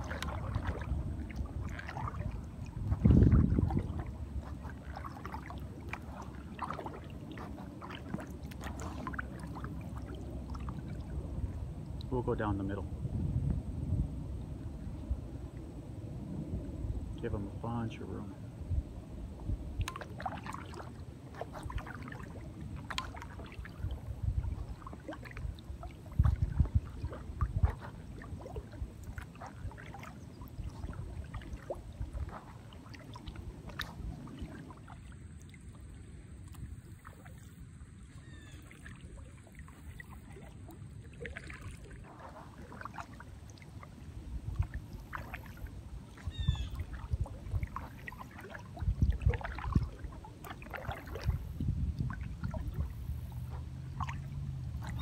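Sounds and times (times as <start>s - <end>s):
water splashing off paddle: 0.0s - 12.6s, 19.4s - 55.0s
dull low thumps: 2.7s - 4.5s, 13.0s - 14.4s.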